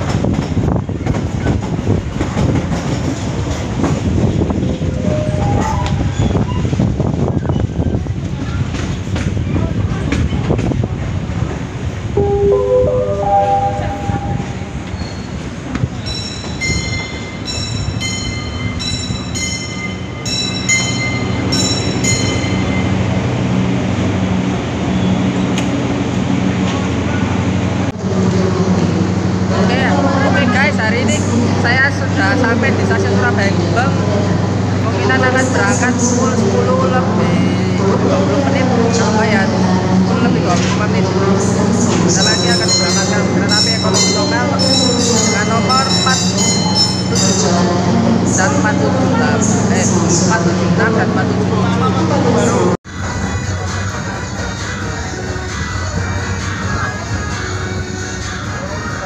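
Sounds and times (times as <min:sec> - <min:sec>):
low hum of standing train: 0:00.0 - 0:59.0
train running into station: 0:00.0 - 0:59.0
loudspeaker chime and melody: 0:05.0 - 0:06.1, 0:12.2 - 0:14.9, 0:42.2 - 0:47.7
voices: 0:26.6 - 0:59.0.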